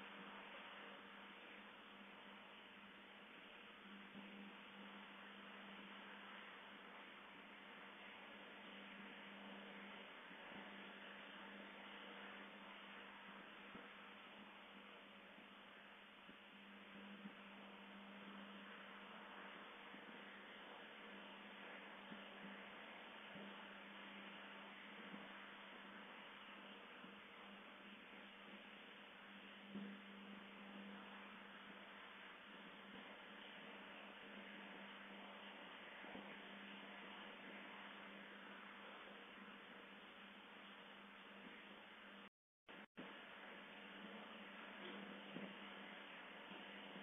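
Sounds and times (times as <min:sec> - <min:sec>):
faint low hum: 0:00.0 - 0:47.0
steady hiss: 0:00.0 - 0:47.0.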